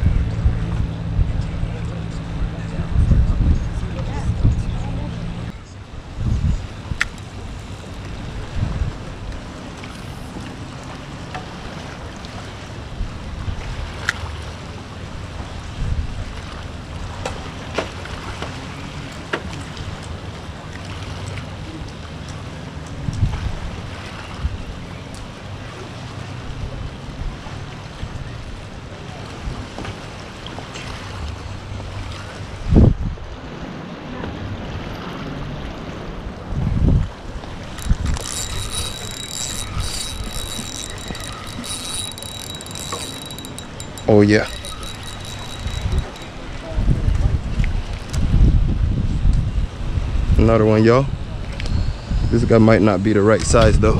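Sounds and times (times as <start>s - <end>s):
wind buffeting microphone: 0.0s - 10.4s, 36.5s - 50.5s
spinning reel cranked fast: 37.8s - 46.4s.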